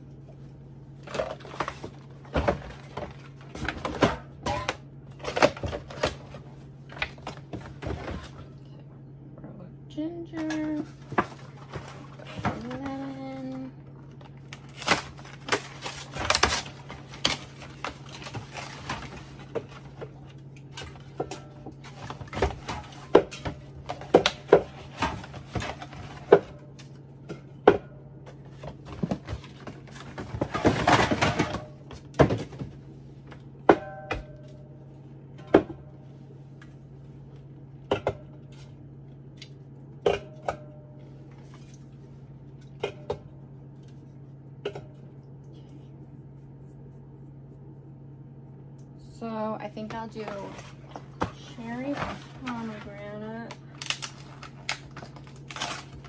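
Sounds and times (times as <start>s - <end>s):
rustling and scraping: 49.9s - 53.4s.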